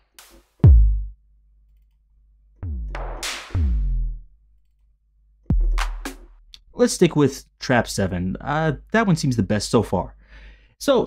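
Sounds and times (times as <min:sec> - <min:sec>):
deep bass kick with falling pitch: 0:00.6 - 0:01.1, 0:02.6 - 0:04.3
electronic snare hit: 0:02.6 - 0:04.0.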